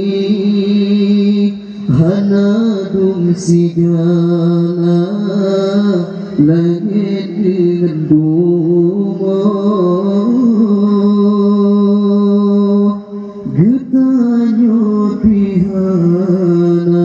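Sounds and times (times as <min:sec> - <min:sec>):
man singing into a microphone: 0:00.0 - 0:17.0.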